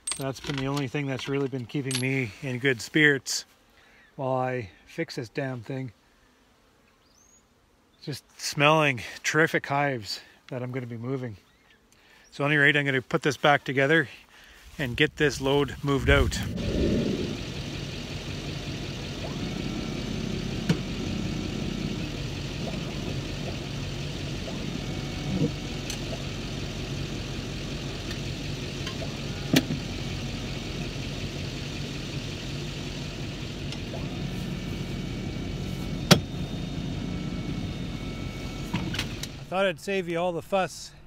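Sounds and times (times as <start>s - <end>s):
engine idling: 16.0s - 39.5s
loader clanking: 16.5s - 39.5s.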